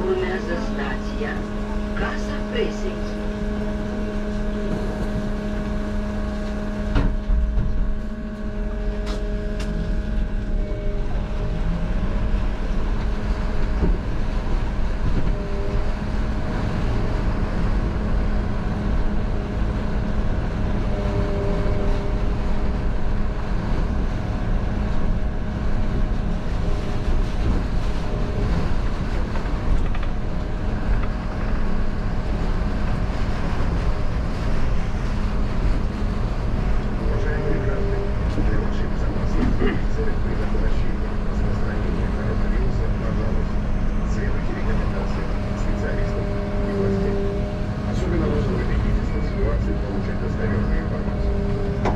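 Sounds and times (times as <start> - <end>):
bus drivetrain hum: 0.0 - 51.9.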